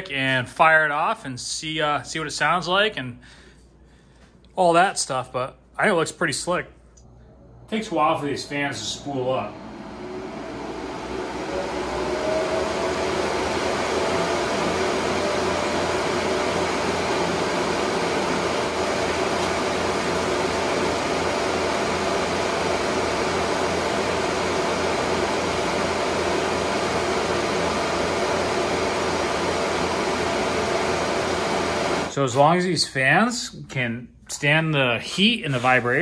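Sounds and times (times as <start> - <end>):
cooling fans whining: 0.0 - 33.6
rush of air from fans: 7.4 - 32.1.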